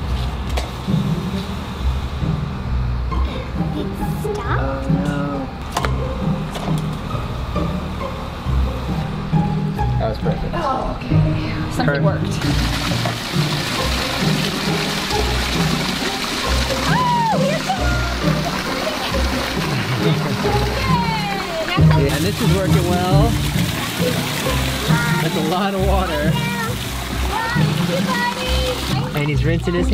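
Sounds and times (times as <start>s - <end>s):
splashing water: 12.2s - 29.9s.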